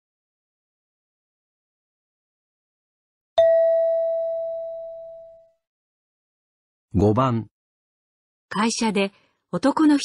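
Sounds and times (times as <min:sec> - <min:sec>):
chime tone ringing: 0:03.4 - 0:05.5.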